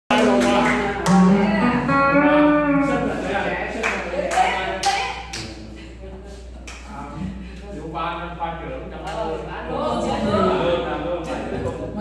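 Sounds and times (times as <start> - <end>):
room noise: 0.1 - 12.0
person singing long note: 1.0 - 3.2.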